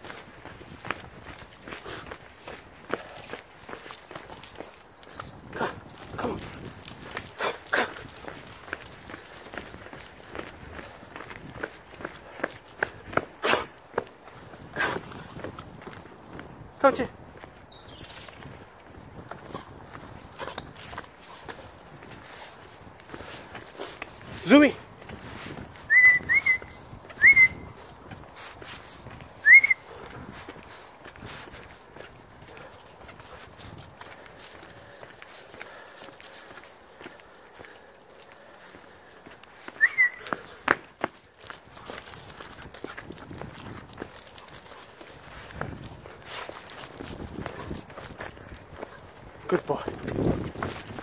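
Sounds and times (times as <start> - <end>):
footsteps on grass and path: 0.0 - 51.0
person whistling to call a dog: 25.9 - 27.7, 29.4 - 29.9, 39.8 - 40.4.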